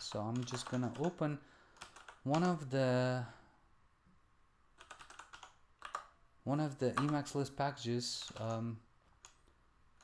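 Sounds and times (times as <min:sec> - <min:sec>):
typing on computer keyboard: 0:00.0 - 0:01.2, 0:01.8 - 0:02.6, 0:04.8 - 0:06.1, 0:06.9 - 0:07.3, 0:08.2 - 0:08.6.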